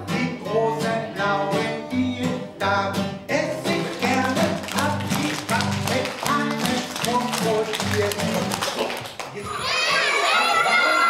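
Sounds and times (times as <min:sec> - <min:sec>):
acoustic guitar strumming: 0:00.0 - 0:08.8
man singing a children's song: 0:00.0 - 0:09.2.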